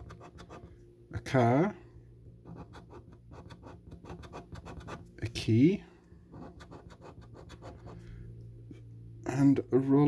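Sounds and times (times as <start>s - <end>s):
scratchcard being scratched: 0.0s - 0.6s, 2.4s - 5.0s, 6.3s - 7.8s
faint low hum: 0.0s - 10.0s.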